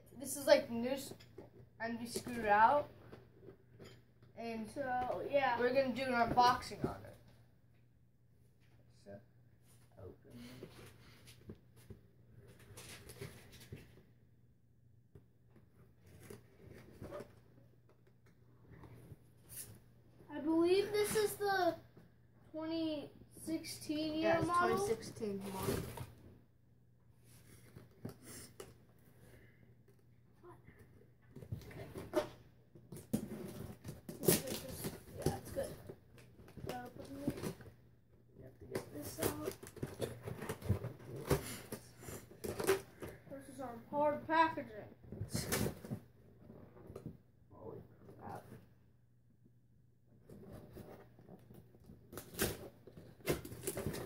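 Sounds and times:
cardboard tearing: 33.1s - 35.6s, 52.1s - 54.0s.

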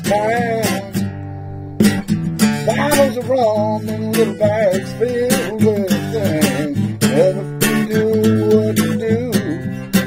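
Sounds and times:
person singing: 0.0s - 1.1s, 2.6s - 10.0s
strummed acoustic guitar: 0.0s - 10.0s.

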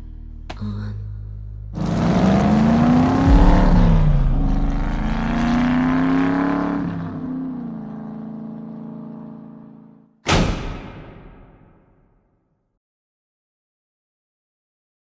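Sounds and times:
car engine accelerating: 1.4s - 10.0s.

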